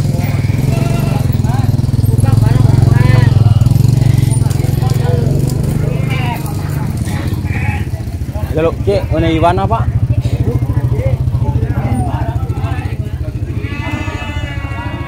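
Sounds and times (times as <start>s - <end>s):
small engine running: 0.0s - 15.0s
voices in background: 0.0s - 15.0s.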